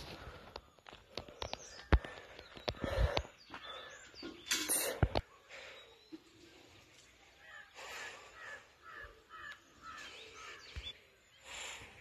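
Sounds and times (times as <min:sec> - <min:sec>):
faint repeated bird calls: 0:00.0 - 0:12.0.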